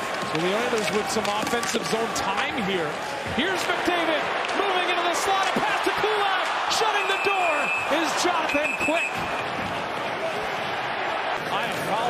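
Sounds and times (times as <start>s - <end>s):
arena crowd noise and voices: 0.0s - 12.0s
referee's whistle blasts: 6.9s - 9.5s.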